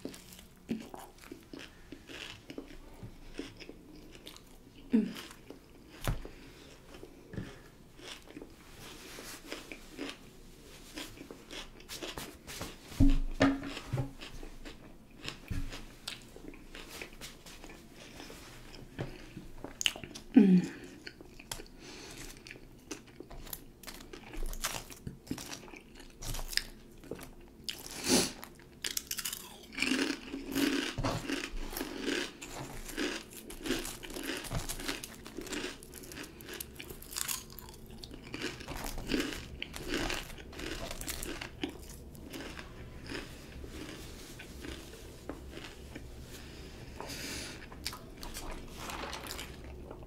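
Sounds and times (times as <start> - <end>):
chewing crunchy chips: 0.0 - 12.8, 13.7 - 50.0.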